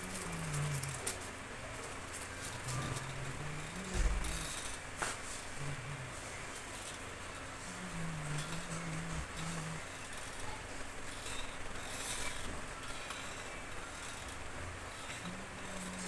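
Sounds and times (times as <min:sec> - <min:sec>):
steady background noise: 0:00.0 - 0:16.0
low droning tone: 0:02.6 - 0:04.8, 0:07.5 - 0:16.0.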